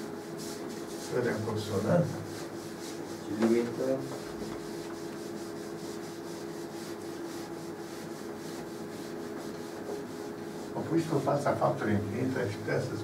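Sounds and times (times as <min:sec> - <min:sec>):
eraser rubbing on blackboard: 0:00.0 - 0:11.3
low room hum: 0:00.0 - 0:13.0.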